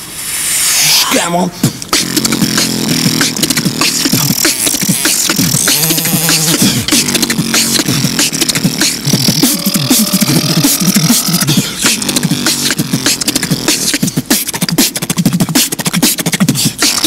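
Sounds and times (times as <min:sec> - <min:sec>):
beatboxing percussion: 0:00.0 - 0:17.0
held rising vocal note: 0:00.4 - 0:14.2
hummed bass notes: 0:01.6 - 0:17.0.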